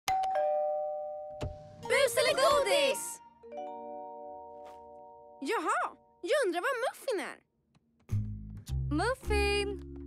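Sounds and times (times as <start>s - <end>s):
cartoon doorbell ding-dong: 0.1s - 1.7s.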